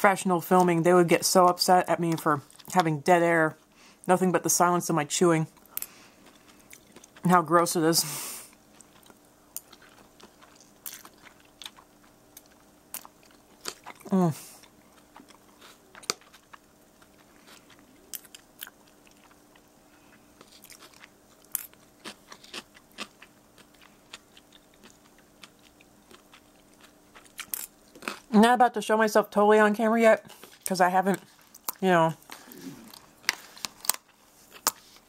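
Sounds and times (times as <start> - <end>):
faint steady hum: 0.0 - 35.0
wet chewing clicks and crunches: 5.6 - 7.3, 8.5 - 19.8, 20.4 - 28.3, 30.5 - 35.0
person humming: 14.1 - 14.5, 32.4 - 32.9.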